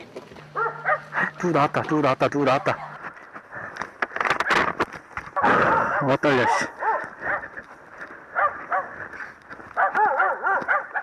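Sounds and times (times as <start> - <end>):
dog barking: 0.6 - 1.2, 5.4 - 7.6, 8.3 - 9.0, 9.8 - 11.0.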